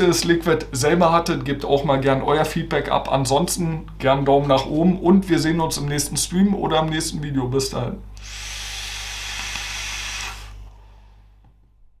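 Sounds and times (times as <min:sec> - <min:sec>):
e-cigarette puff hiss: 0:08.2 - 0:11.2.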